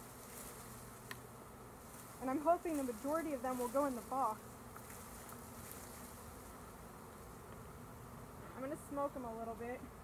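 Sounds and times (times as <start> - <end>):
swarm of bees buzzing: 0.0 - 10.0.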